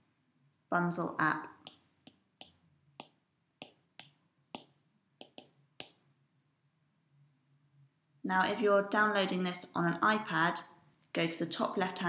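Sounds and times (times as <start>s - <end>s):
faint on-screen keyboard clicks: 1.6s - 6.0s.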